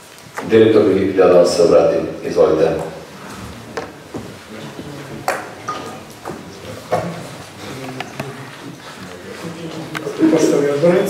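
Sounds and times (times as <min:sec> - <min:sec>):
faint voices murmuring: 0:01.0 - 0:11.0
footsteps on a hard floor: 0:02.8 - 0:10.5.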